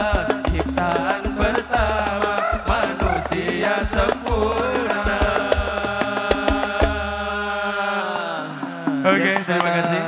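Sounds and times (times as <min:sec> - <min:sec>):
bass drum and hand drum strikes: 0:00.0 - 0:07.4.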